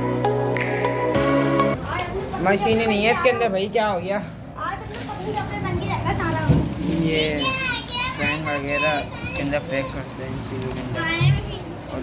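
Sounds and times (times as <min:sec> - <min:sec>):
children talking and calling out: 0:01.7 - 0:03.7, 0:04.5 - 0:12.0.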